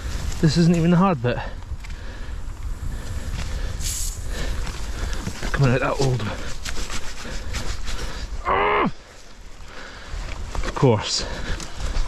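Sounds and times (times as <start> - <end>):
wind rumble on microphone: 0.0 - 8.5
short high hiss: 3.8 - 4.2.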